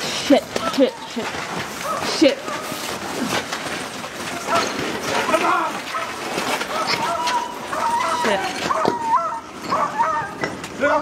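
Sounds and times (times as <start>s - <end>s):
high-pitched whimpering cries: 0.0s - 3.5s, 6.6s - 10.6s.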